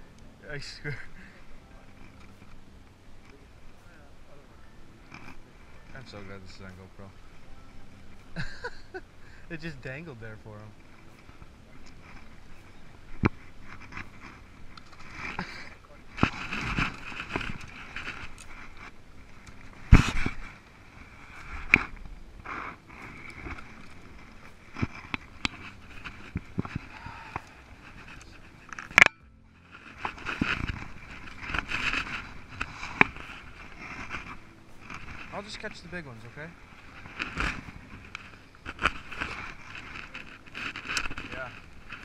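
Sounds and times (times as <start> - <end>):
rustling of brush: 0.0 - 42.0
branches scraping against boat: 4.9 - 42.0.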